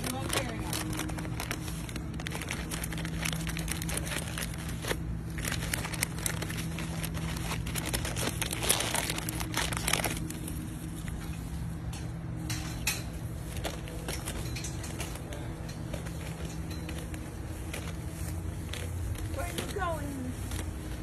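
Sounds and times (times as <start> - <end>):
plastic bag crinkling: 0.0 - 11.2, 13.4 - 21.0.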